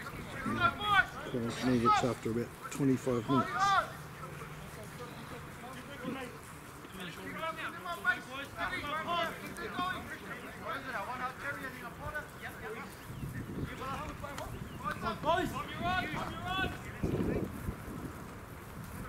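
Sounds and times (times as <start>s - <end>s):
distant voices shouting: 0.0s - 19.0s.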